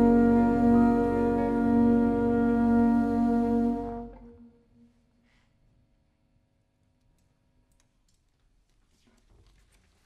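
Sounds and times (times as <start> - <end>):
jazz ensemble held notes: 0.0 - 4.6.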